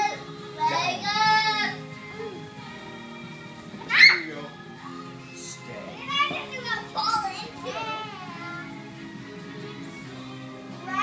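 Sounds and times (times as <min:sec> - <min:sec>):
film music from television: 0:00.0 - 0:11.0
child shouting: 0:03.9 - 0:04.2
children calling out and squealing: 0:03.9 - 0:04.3.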